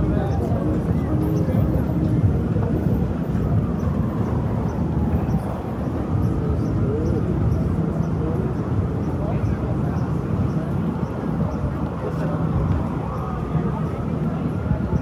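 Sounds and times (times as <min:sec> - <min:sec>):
faint chatter of passers-by: 0:00.0 - 0:15.0
low rumble of traffic: 0:00.0 - 0:15.0.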